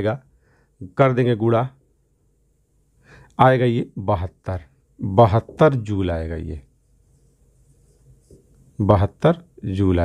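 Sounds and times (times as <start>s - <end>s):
marker writing on whiteboard: 6.8s - 8.8s.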